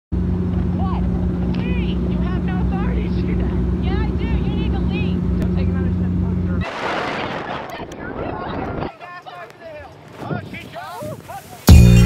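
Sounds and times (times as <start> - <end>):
airplane cabin drone: 0.1 - 6.7.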